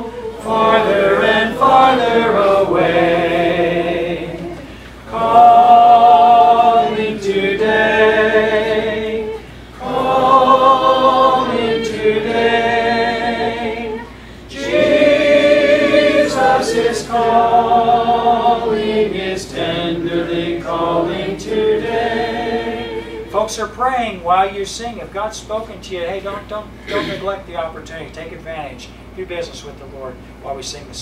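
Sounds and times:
congregation singing a hymn: 0:00.0 - 0:23.4.

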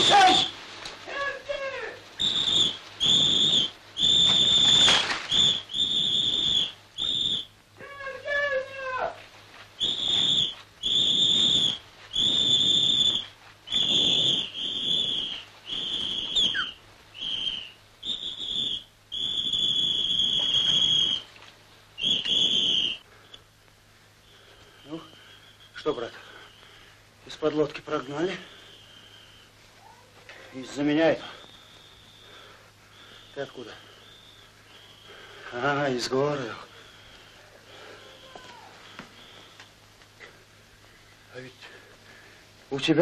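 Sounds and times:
shrill whistle blasts: 0:00.0 - 0:09.0, 0:09.8 - 0:21.4, 0:22.0 - 0:23.4, 0:24.3 - 0:26.9, 0:27.8 - 0:39.6
short wavering cries: 0:00.0 - 0:09.2, 0:09.8 - 0:21.4, 0:22.0 - 0:23.4, 0:28.0 - 0:39.6.

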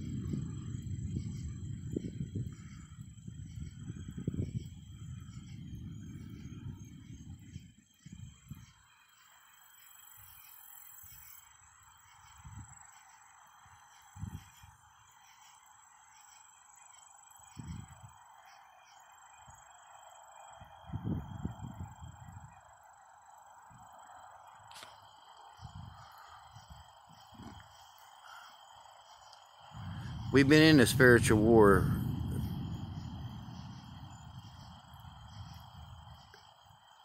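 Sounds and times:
distant thunder rumbling: 0:29.8 - 0:36.2.

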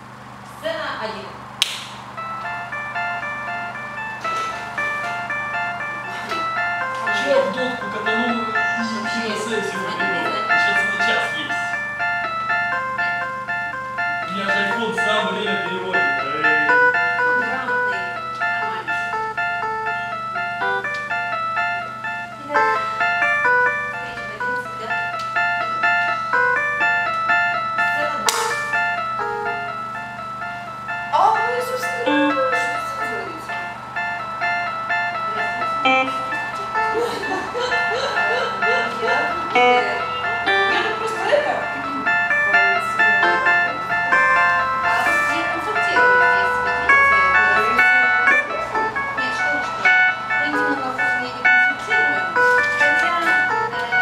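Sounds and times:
electronic keyboard slow melody: 0:02.1 - 0:54.0.

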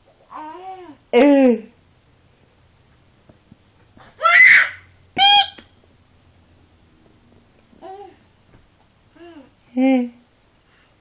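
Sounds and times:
baby squealing: 0:04.2 - 0:05.6.

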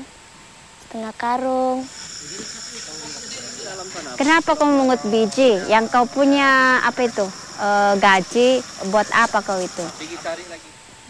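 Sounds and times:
insects droning: 0:00.0 - 0:11.0
faint voices: 0:01.6 - 0:10.9.

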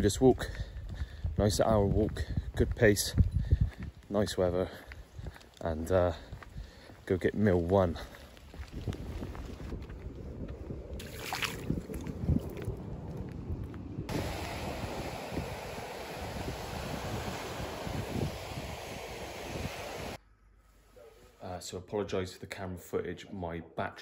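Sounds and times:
wind on microphone: 0:00.0 - 0:05.4, 0:07.9 - 0:20.2
surf washing onto shingle: 0:14.1 - 0:20.2.

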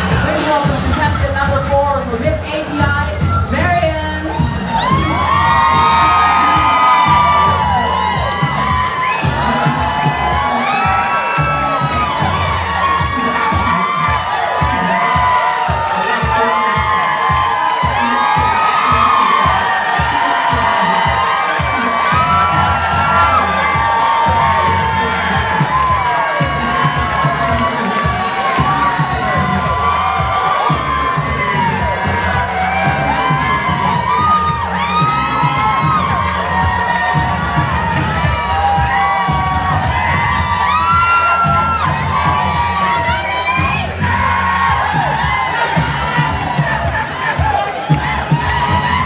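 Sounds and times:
music with steady beat: 0:00.0 - 0:49.0
audience cheering and whooping: 0:02.4 - 0:49.0.

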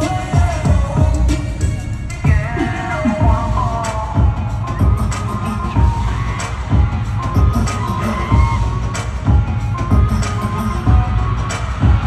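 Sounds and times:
pop music over sound system: 0:00.0 - 0:12.0.

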